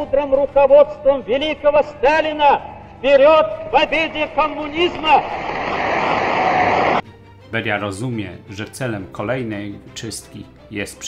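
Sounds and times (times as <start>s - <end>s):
man shouting speech: 0.0s - 5.2s
large audience applauding: 4.8s - 7.0s.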